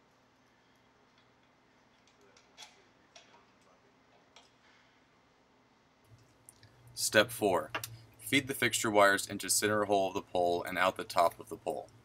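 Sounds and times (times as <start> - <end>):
faint metallic clicks and taps: 1.0 - 4.6, 7.7 - 8.0.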